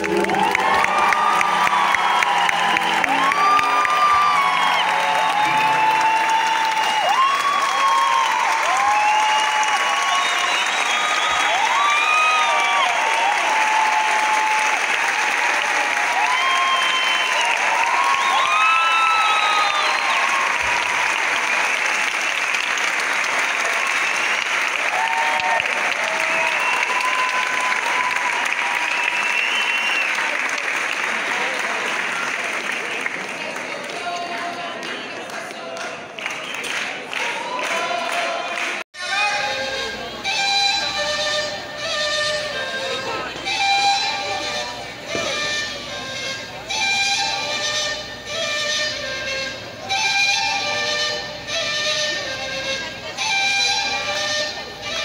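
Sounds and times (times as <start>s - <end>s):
piano notes: 0.0s - 7.0s
audience cheering: 0.0s - 34.2s, 36.2s - 40.1s
audience applauding: 0.0s - 39.3s.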